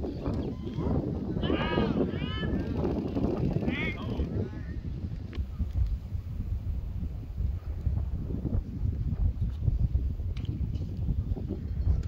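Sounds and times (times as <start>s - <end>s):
wind rumble on microphone: 0.0s - 12.0s
person shouting high calls: 1.4s - 2.5s.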